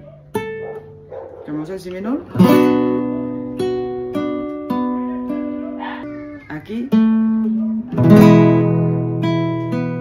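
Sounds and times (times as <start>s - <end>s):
guitar notes plucked: 2.2s - 10.0s
classical guitar chord strummed: 2.3s - 5.8s, 6.9s - 10.0s.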